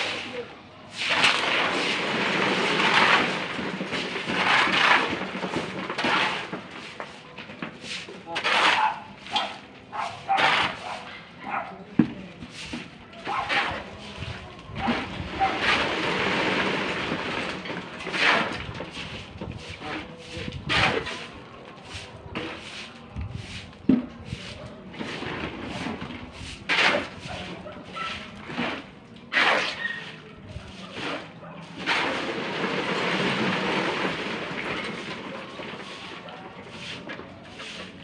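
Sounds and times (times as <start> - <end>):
wet concrete rattling and grinding: 0.0 - 38.0.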